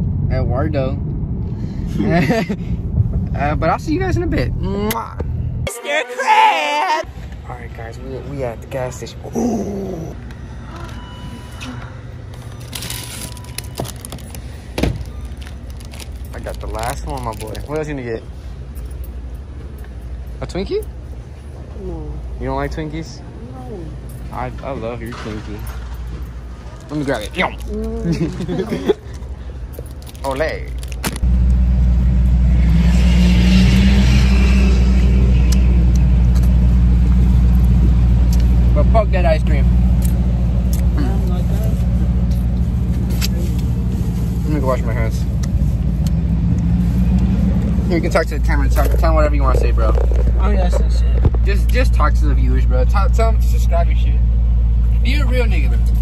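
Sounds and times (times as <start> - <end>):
wrappers crinkling: 12.6 - 17.7, 29.9 - 31.2
car engine idling: 35.5 - 56.0.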